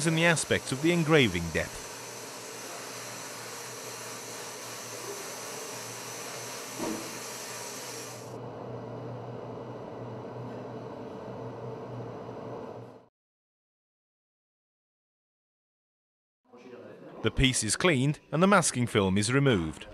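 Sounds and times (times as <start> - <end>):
sandblaster air jet hissing: 0.0 - 8.4.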